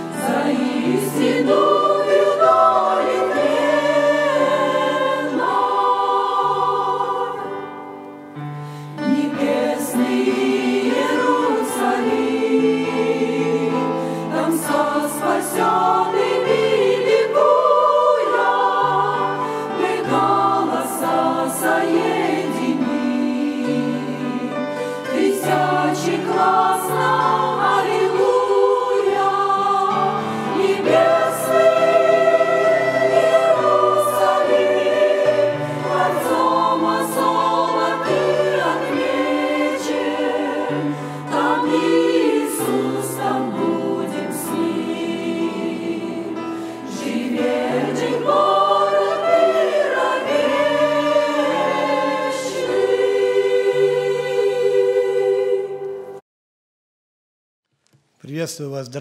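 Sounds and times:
women's choir singing a hymn: 0.0s - 56.2s.

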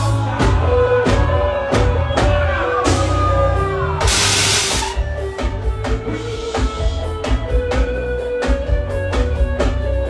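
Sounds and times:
loud live band music: 0.0s - 10.0s.

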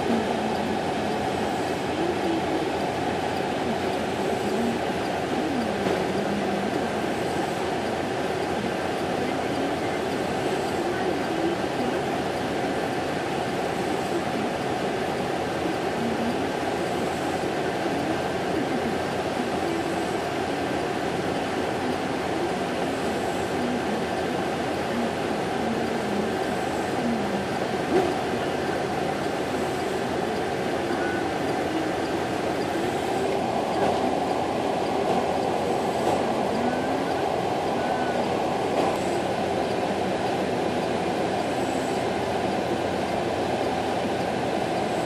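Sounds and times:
diesel engine drone: 0.0s - 45.0s.

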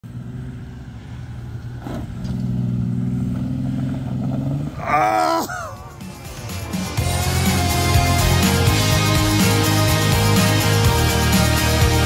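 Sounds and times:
engine running hard: 0.0s - 5.0s.

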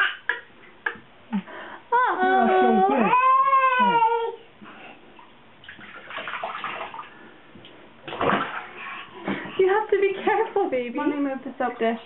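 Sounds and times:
bath water splashing: 5.6s - 12.0s.

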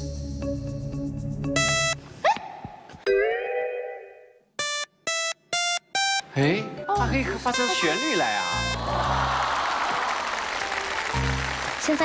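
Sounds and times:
synthesized notes: 1.5s - 2.1s, 3.1s - 8.9s.

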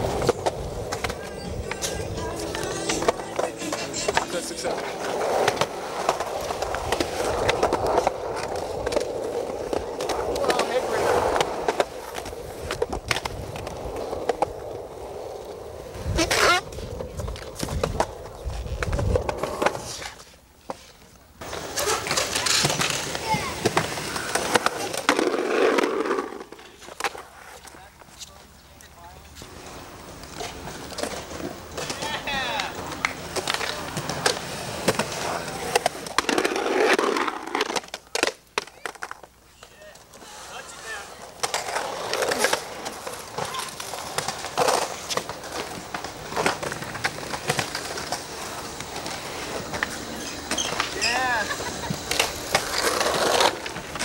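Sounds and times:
skateboard wheels rolling on concrete: 0.0s - 54.0s.

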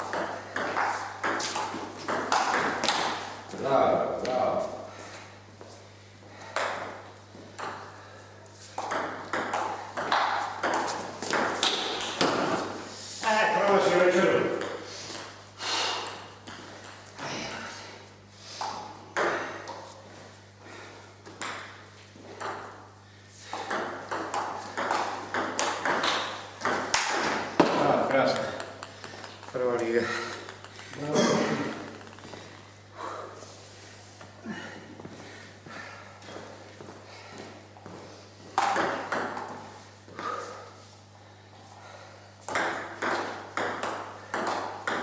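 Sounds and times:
table tennis ball clicking: 28.3s - 31.0s, 31.7s - 32.3s.

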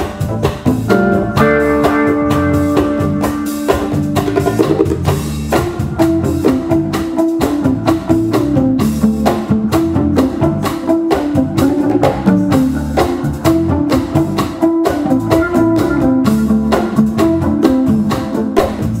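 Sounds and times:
congas: 0.0s - 19.0s
drum kit: 0.0s - 19.0s
electric bass: 0.0s - 19.0s
electric guitar: 0.0s - 19.0s.

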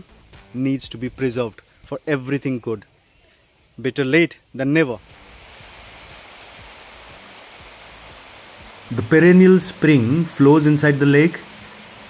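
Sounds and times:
water cascading over rocks: 4.6s - 12.0s.

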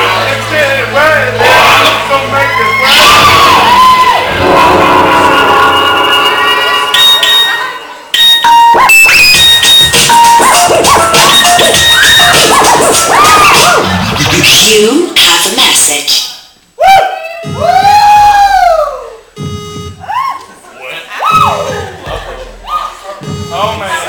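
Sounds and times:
loud dance music: 0.0s - 16.2s, 17.3s - 18.6s, 21.3s - 24.0s
kids cheering and shouting: 1.4s - 8.0s, 11.7s - 14.0s, 16.8s - 19.3s, 20.0s - 23.2s.

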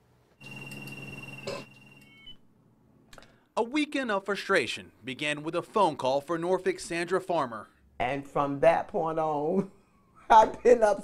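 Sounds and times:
high electronic phone tone: 0.4s - 2.4s.

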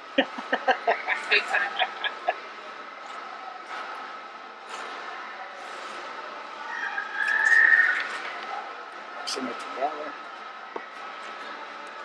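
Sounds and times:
high squeal: 6.7s - 8.2s.

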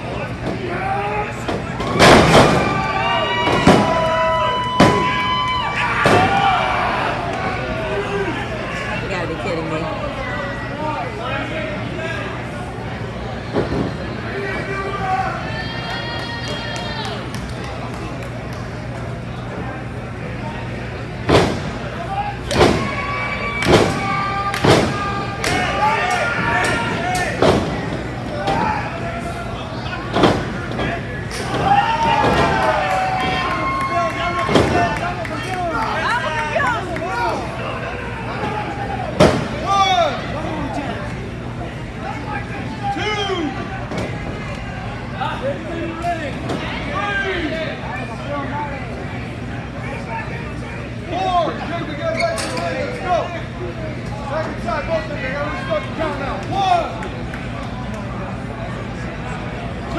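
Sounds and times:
spectators shouting: 0.0s - 9.3s, 13.3s - 17.4s, 21.8s - 41.0s
crowd cheering: 0.0s - 20.0s, 21.6s - 48.2s.

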